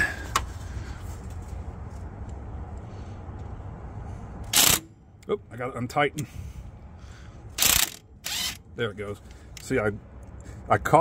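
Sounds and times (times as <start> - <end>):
impact wrench burst: 4.5 - 4.9, 7.6 - 8.6.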